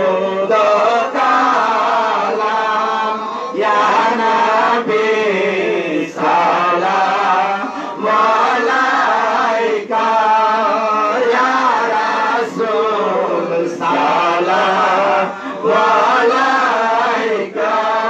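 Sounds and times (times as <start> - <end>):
men chanting into microphones: 0.0 - 18.0.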